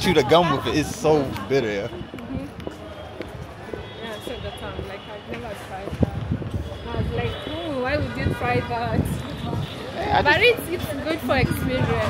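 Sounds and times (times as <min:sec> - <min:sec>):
voices of passers-by: 0:00.0 - 0:12.0
footsteps on pavement: 0:00.1 - 0:12.0.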